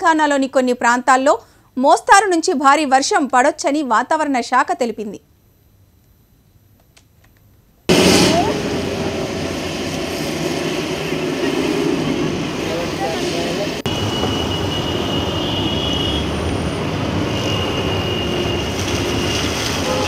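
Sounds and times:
rain hissing: 0:07.9 - 0:14.2, 0:16.5 - 0:20.0
wet tyres on road: 0:07.9 - 0:20.0.

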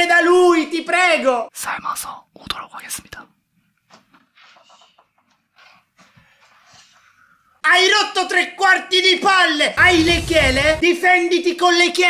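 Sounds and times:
person whispering: 0:01.5 - 0:03.4.

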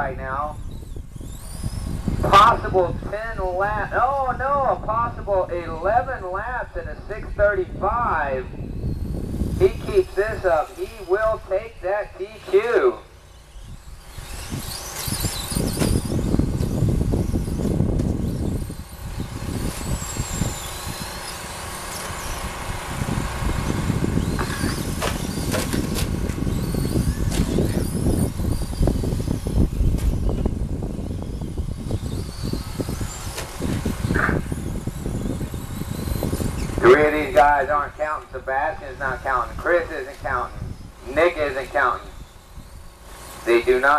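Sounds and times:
rc truck motor whine: 0:00.0 - 0:43.9.

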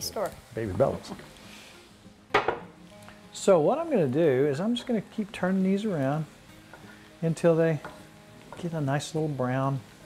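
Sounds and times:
faint pan sizzle: 0:00.0 - 0:10.0.

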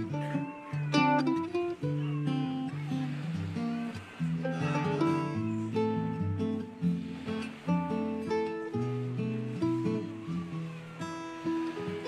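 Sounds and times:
acoustic guitar duet: 0:00.0 - 0:12.0.

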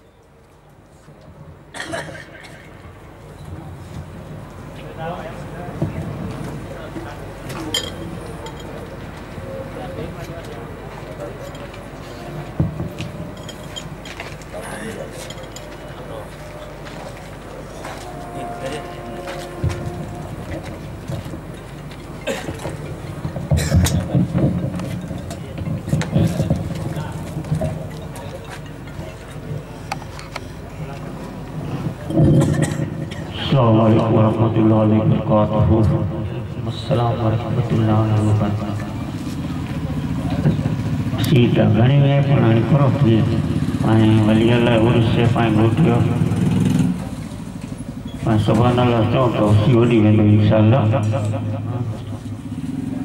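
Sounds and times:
steady low hum: 0:00.9 - 0:53.0
man speaking over loudspeaker: 0:04.8 - 0:07.9, 0:17.5 - 0:20.7, 0:33.2 - 0:39.2, 0:40.2 - 0:46.6, 0:48.2 - 0:52.2.

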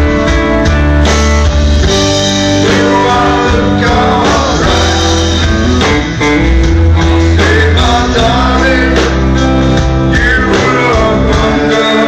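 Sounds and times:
live band playing rock ballad: 0:00.0 - 0:12.0.

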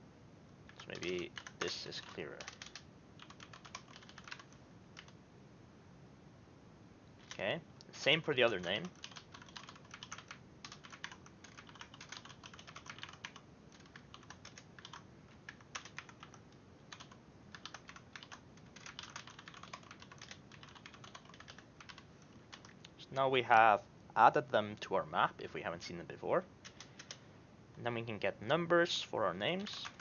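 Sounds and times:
computer keyboard typing: 0:00.7 - 0:05.2, 0:08.4 - 0:23.0, 0:26.6 - 0:27.2, 0:29.6 - 0:30.0.

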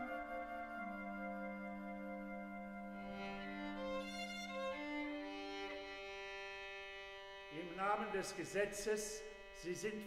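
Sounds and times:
violin line: 0:00.0 - 0:10.0.

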